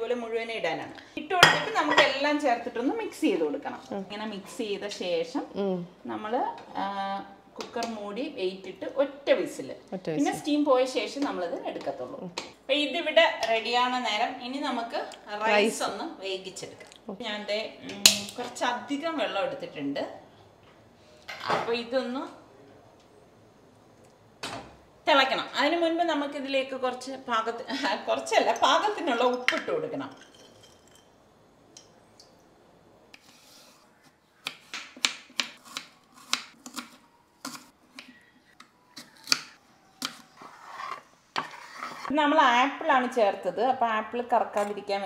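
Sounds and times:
woman speaking: 0.0 - 13.0, 14.3 - 20.0
blade scraping on board: 40.4 - 42.1.

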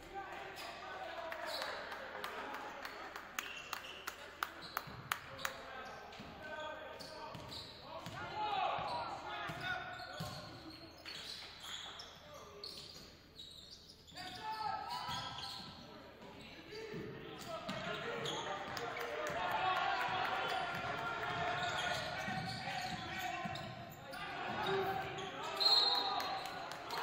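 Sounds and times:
players' voices calling out: 16.4 - 27.0.

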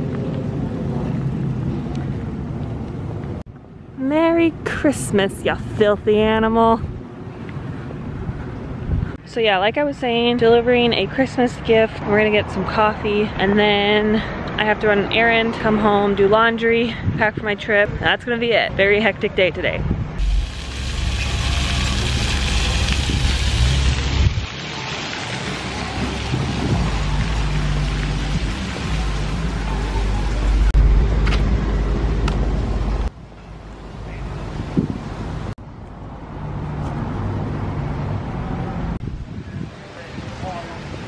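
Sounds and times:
street ambience: 0.0 - 41.0
wind rumbling on microphone: 5.6 - 9.3, 19.6 - 41.0.

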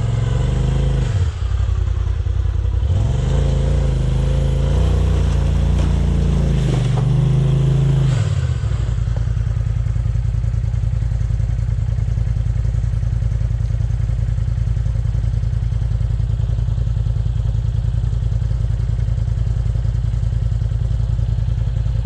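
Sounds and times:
engine idling: 0.0 - 22.0.

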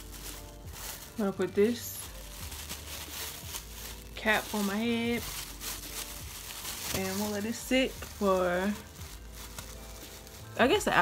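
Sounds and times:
plastic cap crinkling: 0.0 - 11.0.

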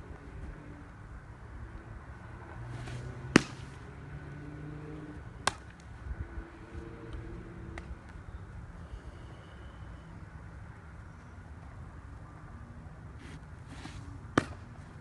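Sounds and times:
baseball hitting target: 2.8 - 3.9, 5.4 - 5.9, 13.8 - 14.8.

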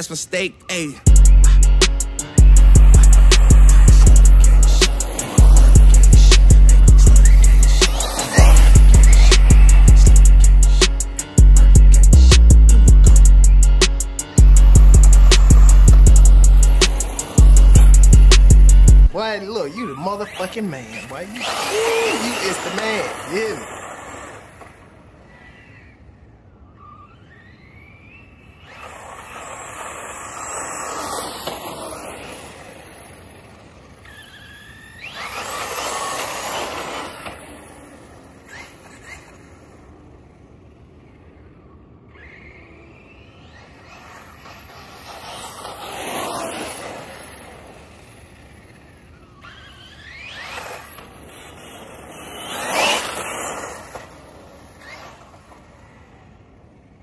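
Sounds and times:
rc car motor whine passing: 0.0 - 57.0.

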